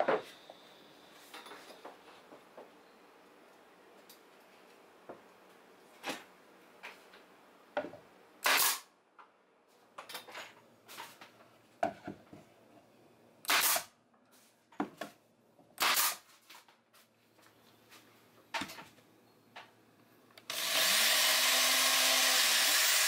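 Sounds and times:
nail gun firing: 0:08.4 - 0:08.9, 0:13.5 - 0:13.9, 0:15.8 - 0:16.3.

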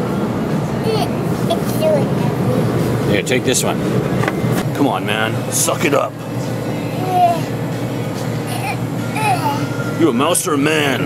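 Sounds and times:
refrigerator hum: 0:00.0 - 0:11.0
faint background music: 0:04.7 - 0:11.0.

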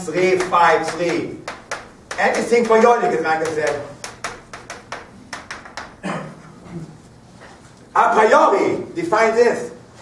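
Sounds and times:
chalk tapping on blackboard: 0:00.2 - 0:06.0.

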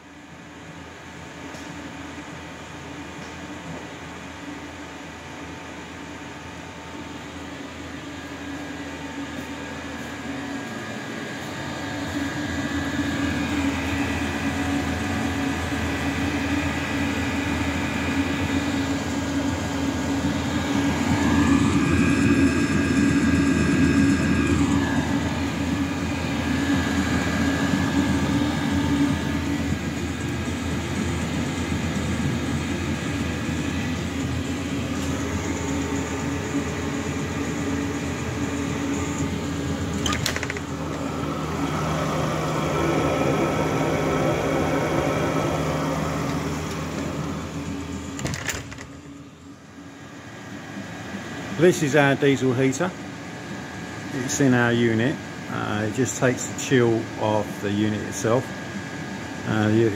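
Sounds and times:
air heater blower whirring: 0:00.0 - 0:59.9
low hum: 0:07.1 - 0:51.9.

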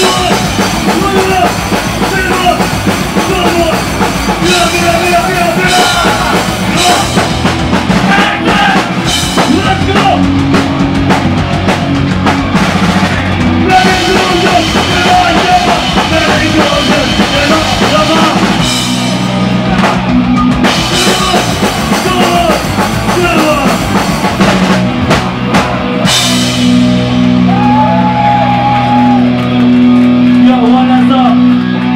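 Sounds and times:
bass guitar: 0:00.0 - 0:31.9
distorted electric guitar: 0:00.0 - 0:31.9
drum kit: 0:00.0 - 0:31.9.

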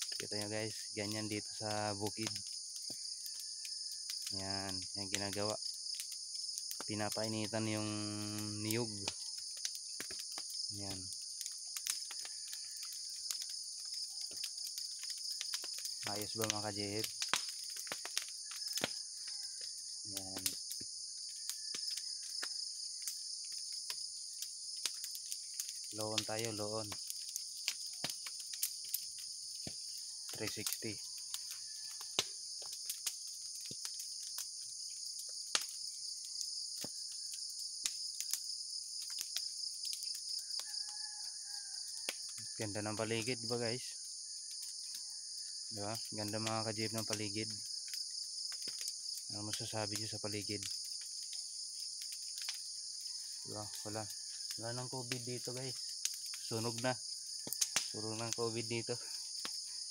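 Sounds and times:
crickets chirping: 0:00.0 - 0:59.9
fire crackling: 0:00.0 - 0:59.9
insects droning: 0:00.0 - 0:59.9.

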